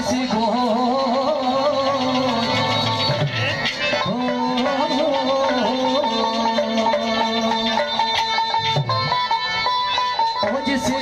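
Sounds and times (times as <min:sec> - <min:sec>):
plucked-string melody: 0:00.0 - 0:11.0.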